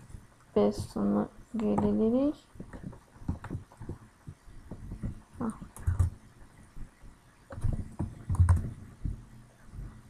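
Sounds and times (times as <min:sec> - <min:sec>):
computer keyboard tapping: 0:02.6 - 0:06.2, 0:07.5 - 0:09.2.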